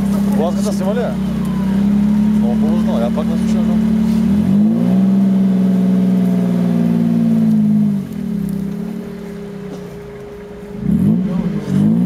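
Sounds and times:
off-road vehicle engine revving: 0.0 - 12.0.

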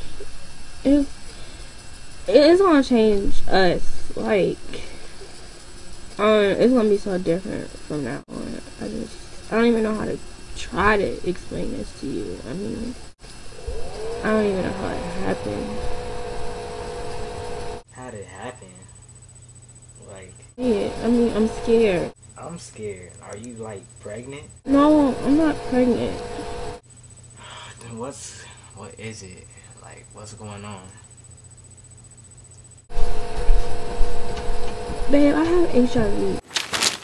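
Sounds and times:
low hum: 0.0 - 17.8, 24.6 - 26.8
loud rumbling noise: 6.1 - 17.8
background hiss: 26.9 - 32.8.

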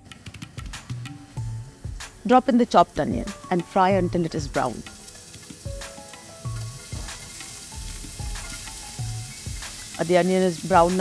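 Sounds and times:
onion sizzling in oil: 0.0 - 11.0.

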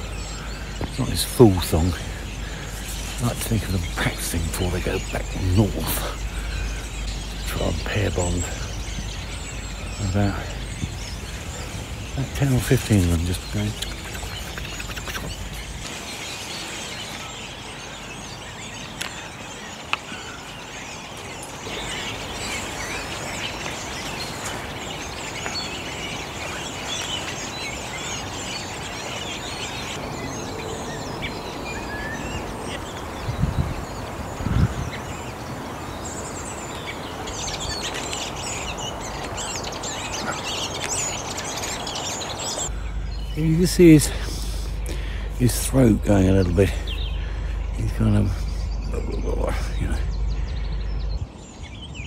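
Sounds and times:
birds warbling and twittering: 0.0 - 52.0.

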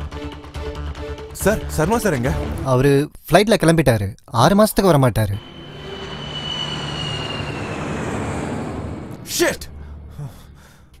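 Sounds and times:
jet airliner flying past: 5.4 - 10.9.

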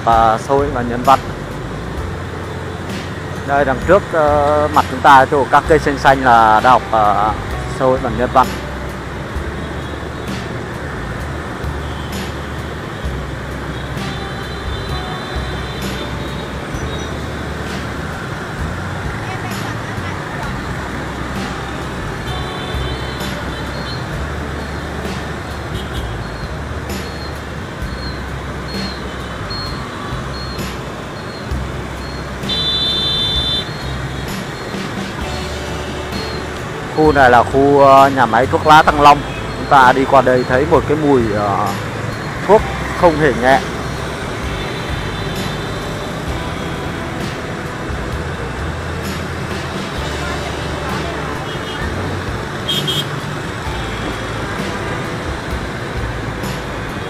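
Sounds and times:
motorbike traffic: 0.0 - 57.0
road noise rumble: 0.0 - 57.0
vehicle horns: 11.8 - 18.6, 20.6 - 37.4, 42.1 - 56.2.

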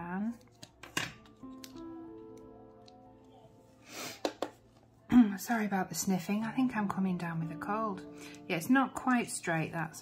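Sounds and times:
soft background music: 0.0 - 10.0
person sniffing: 3.8 - 4.3.

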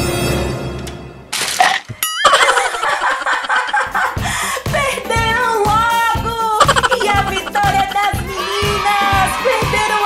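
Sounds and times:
lively music: 2.2 - 10.0.

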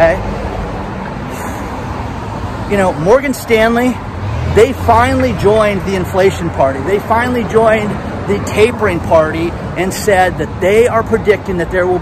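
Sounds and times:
street traffic going by: 0.0 - 12.0.

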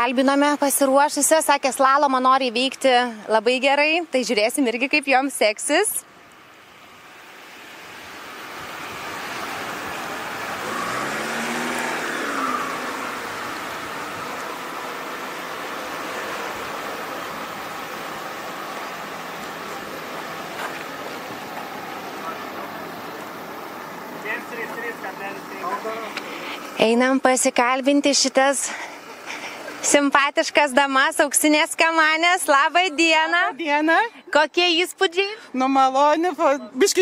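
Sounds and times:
car engine revving: 6.5 - 30.0.

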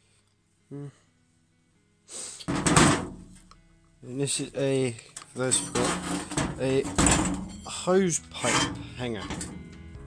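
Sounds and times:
metal clatter and scrape: 5.4 - 9.7.

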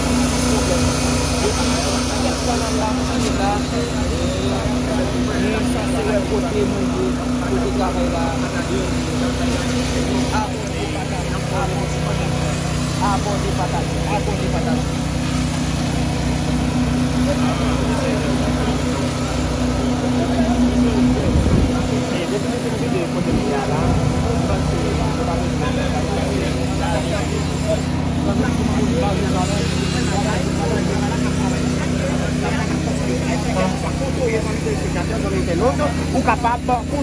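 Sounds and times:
heavy machine engine running: 0.0 - 37.0
people talking: 0.0 - 37.0.

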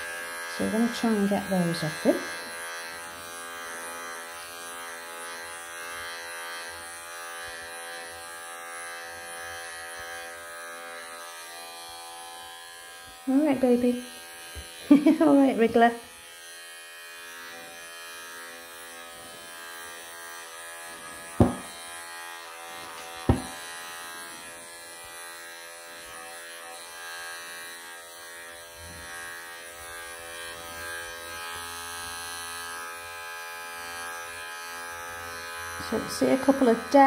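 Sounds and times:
electric clippers buzzing: 0.0 - 37.0.

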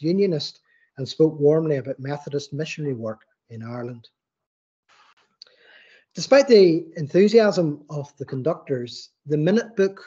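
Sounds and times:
soft in-breath: 0.6 - 1.0, 5.0 - 6.1.

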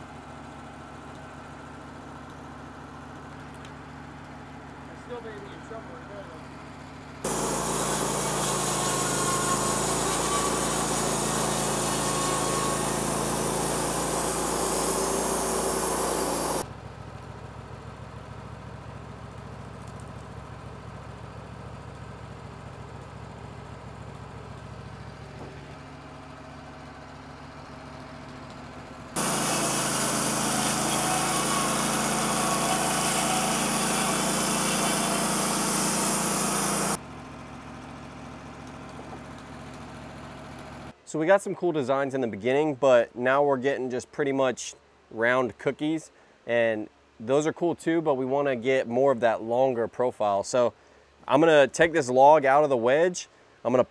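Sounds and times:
bandsaw mill cutting log: 7.2 - 16.6, 28.6 - 37.0.

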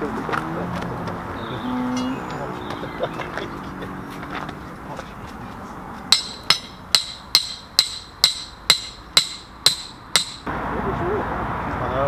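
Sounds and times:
hammer striking steel pin: 6.1 - 10.5.

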